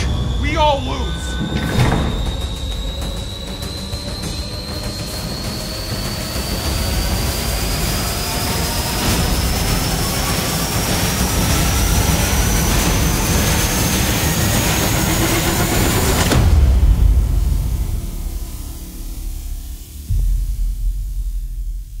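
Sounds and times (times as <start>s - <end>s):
thin rising whine: 0.0s - 16.5s
noisy riser build: 0.0s - 20.2s
deep low hit: 16.6s - 22.0s.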